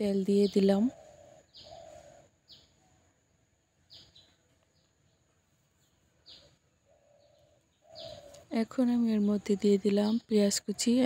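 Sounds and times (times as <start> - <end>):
small bird chirping: 0.0 - 11.0.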